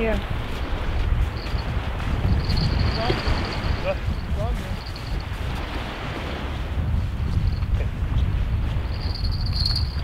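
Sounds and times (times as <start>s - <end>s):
wind rumbling on microphone: 0.0s - 10.0s
small bell jingling: 1.3s - 5.4s, 8.9s - 10.0s.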